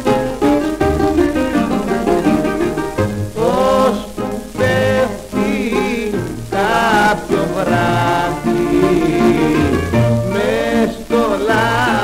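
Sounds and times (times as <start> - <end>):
instrumental popular song on record: 0.0 - 12.0.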